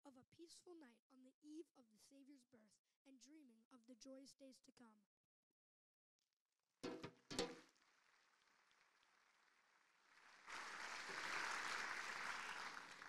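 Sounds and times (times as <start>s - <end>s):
brief bumps: 6.8s - 7.6s
audience applause: 7.6s - 13.0s.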